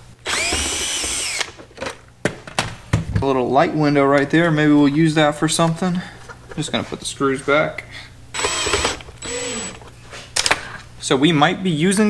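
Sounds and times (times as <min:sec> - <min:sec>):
cordless drill whining: 0:00.2 - 0:01.6, 0:08.3 - 0:09.8.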